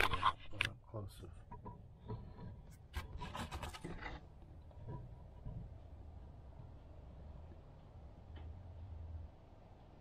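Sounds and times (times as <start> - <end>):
rubbing and scraping: 0.0 - 0.7, 1.5 - 5.8.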